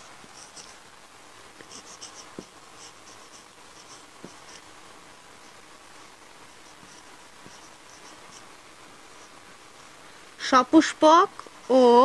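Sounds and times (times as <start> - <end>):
marker squeaking on whiteboard: 0.3 - 0.8, 1.6 - 4.6
marker tapping on board: 2.3 - 2.6.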